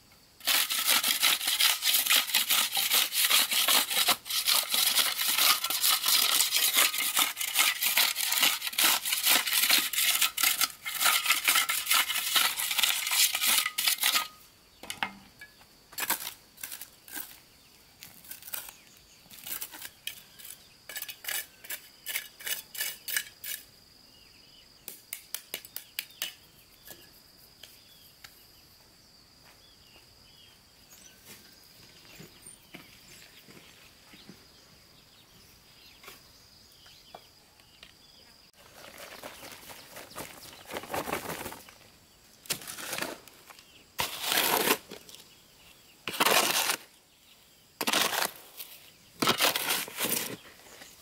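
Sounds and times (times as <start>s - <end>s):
hoe scraping gravelly soil: 0.4s - 14.5s, 15.9s - 23.7s, 38.6s - 41.8s, 42.5s - 45.4s, 46.0s - 47.1s, 47.8s - 51.0s
shovel working soil: 0.4s - 15.0s, 15.9s - 17.4s, 18.0s - 23.7s, 42.4s - 45.3s, 46.0s - 47.0s, 47.8s - 51.0s.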